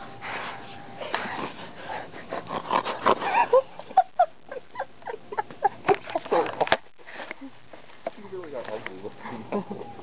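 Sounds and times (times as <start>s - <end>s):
person laughing: 3.2s - 6.5s, 9.3s - 10.0s.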